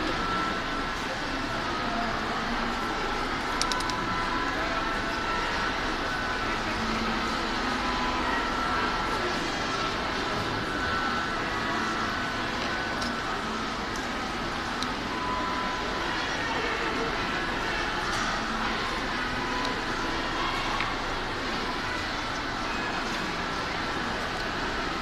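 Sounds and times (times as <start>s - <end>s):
constant rush of noise: 0.0s - 25.0s
indistinct distant voices: 0.0s - 25.0s
small clicks: 3.6s - 4.0s.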